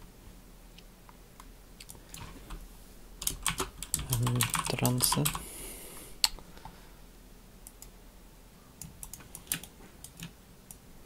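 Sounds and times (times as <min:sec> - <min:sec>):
computer keyboard and mouse clicks: 0:03.2 - 0:05.4, 0:07.6 - 0:08.0, 0:08.8 - 0:10.8.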